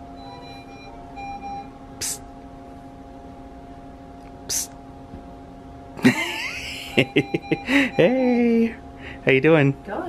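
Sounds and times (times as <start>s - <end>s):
room equipment hum: 0.0s - 10.0s
patient monitor alert tone: 0.2s - 2.2s, 6.2s - 8.8s.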